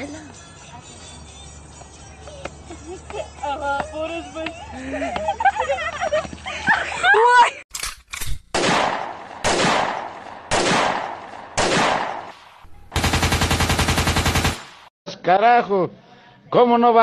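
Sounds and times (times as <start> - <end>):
voices: 0.0 - 7.6
single gunshots: 8.3 - 14.9
machine-gun burst: 13.0 - 14.9.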